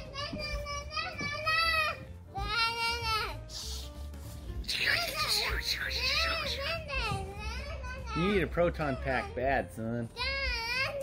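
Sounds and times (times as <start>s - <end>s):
faint rubbing noise: 3.6s - 5.9s.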